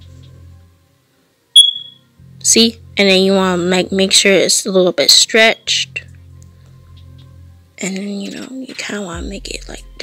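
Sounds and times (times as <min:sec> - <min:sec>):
high-pitched electronic beep: 0:01.6 - 0:02.0.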